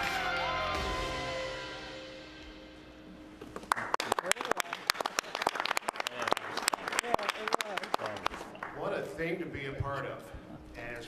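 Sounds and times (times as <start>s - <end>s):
soundtrack music: 0.0s - 3.4s
people applauding: 3.6s - 9.1s.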